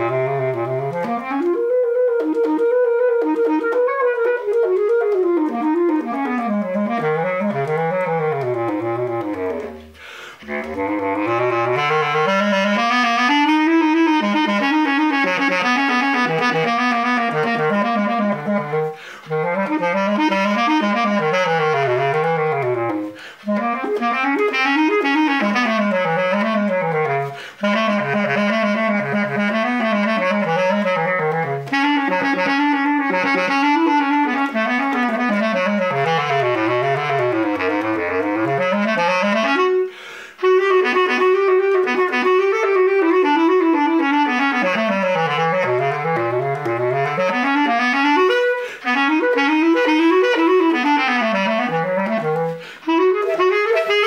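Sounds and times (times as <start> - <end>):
bass clarinet solo: 0.0 - 54.0.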